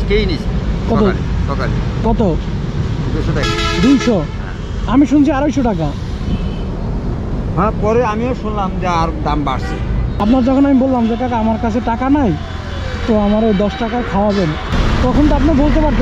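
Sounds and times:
vehicle horn toot: 0:03.4 - 0:04.2, 0:06.3 - 0:06.7, 0:09.5 - 0:11.5, 0:13.1 - 0:14.7.

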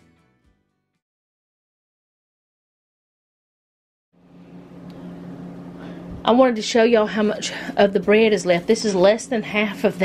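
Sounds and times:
steady low hum: 0:04.2 - 0:10.0.

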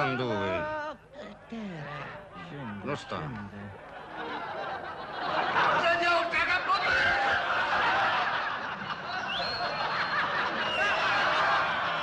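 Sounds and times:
audience laughing: 0:02.6 - 0:12.0.

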